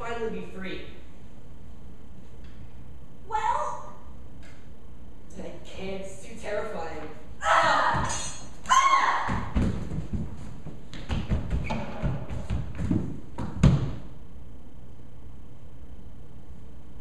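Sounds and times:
body thudding on floor: 0:09.2 - 0:14.1
footfalls and thumps on stage: 0:09.2 - 0:14.1.

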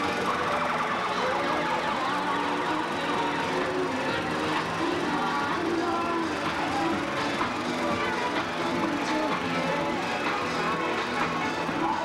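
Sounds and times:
parade music: 0:00.0 - 0:12.0.

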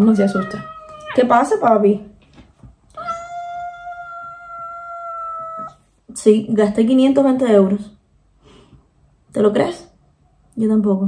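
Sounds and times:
cat meowing: 0:00.0 - 0:01.3, 0:02.9 - 0:05.8.

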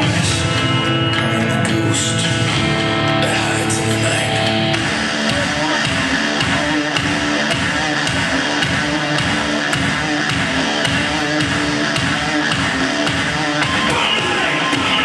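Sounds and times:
loud music with steady beat: 0:00.0 - 0:15.0.

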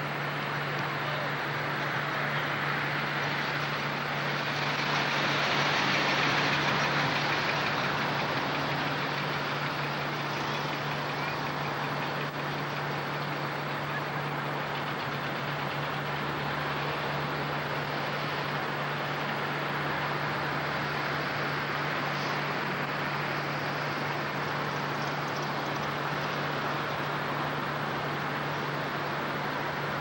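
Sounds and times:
car interior driving noise: 0:00.0 - 0:30.0.

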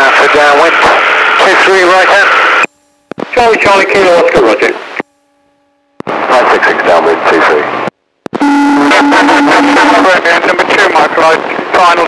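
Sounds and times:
electronic buzzing tone on radio: 0:08.3 - 0:10.2.

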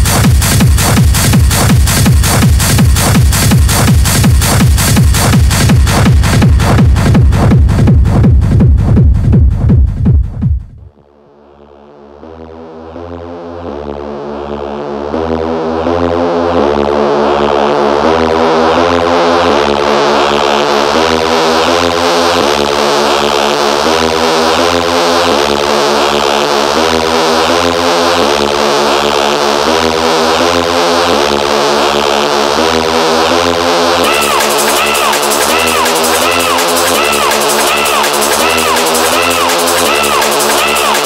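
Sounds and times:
hard techno music: 0:00.0 - 0:41.0.

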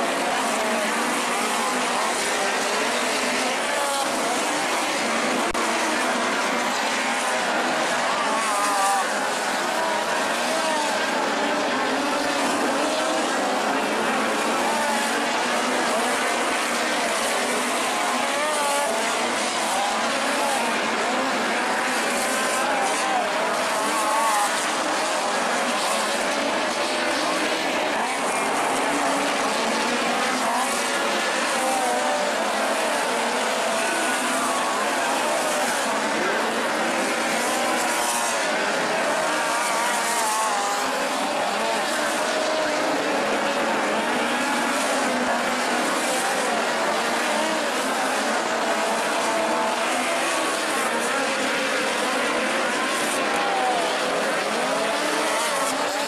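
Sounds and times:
crowd voices: 0:00.0 - 0:56.0
race car engines wavering: 0:00.0 - 0:56.0.

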